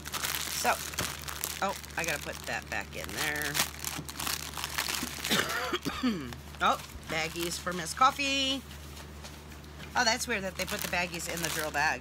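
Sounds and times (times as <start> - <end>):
plastic bags crinkling: 0.0 - 8.5, 10.0 - 12.0.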